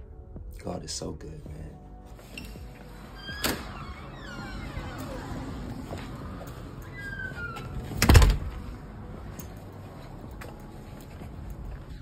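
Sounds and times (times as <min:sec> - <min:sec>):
faint high squeaks: 0:03.2 - 0:08.0
metal door shutting with thud: 0:07.9 - 0:08.5.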